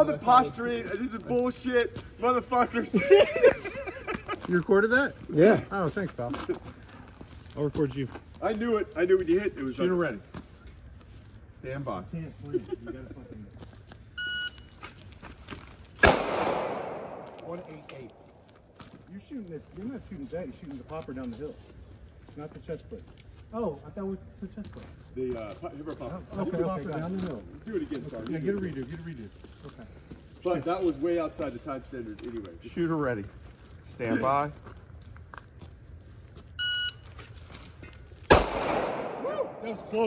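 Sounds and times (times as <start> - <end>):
gunshot with echo: 16.0 - 18.1, 38.3 - 40.0
high-pitched timer beep: 36.6 - 37.0.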